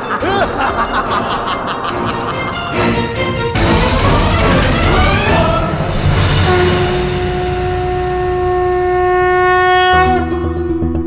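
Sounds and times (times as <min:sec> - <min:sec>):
low rumble: 0:00.2 - 0:09.1
conch shell blown: 0:04.7 - 0:10.5.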